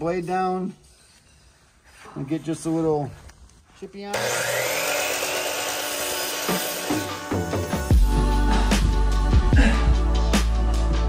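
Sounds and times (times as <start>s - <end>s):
miter saw motor whine: 4.1s - 7.4s
music: 6.2s - 11.0s.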